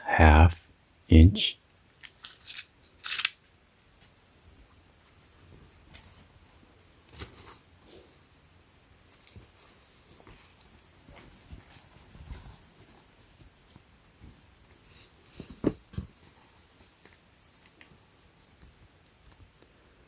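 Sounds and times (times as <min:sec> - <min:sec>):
fabric rustling: 0:09.0 - 0:18.2.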